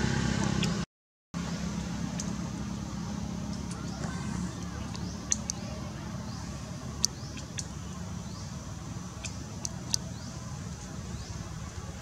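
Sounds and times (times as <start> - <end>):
low engine-like hum: 1.4 - 12.0
faint murmuring voices: 3.6 - 12.0.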